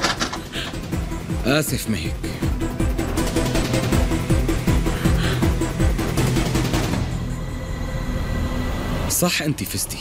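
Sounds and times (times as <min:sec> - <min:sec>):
low rumbling drone: 0:02.2 - 0:09.2.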